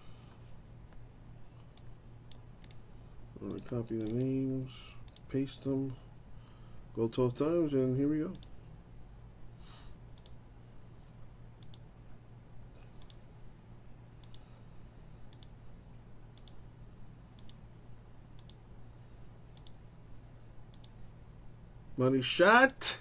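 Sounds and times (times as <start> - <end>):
faint low hum: 0.0 - 23.0
computer mouse clicking: 1.6 - 2.8, 3.4 - 4.4, 5.0 - 5.3, 8.3 - 8.6, 10.1 - 10.4, 11.6 - 11.9, 13.0 - 13.2, 14.2 - 14.5, 15.3 - 15.6, 16.3 - 16.6, 17.4 - 17.6, 18.4 - 18.6, 19.5 - 19.8, 20.7 - 21.0.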